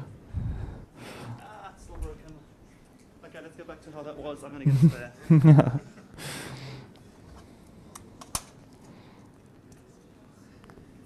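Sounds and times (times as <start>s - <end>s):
breath into a microphone: 0.0s - 1.5s.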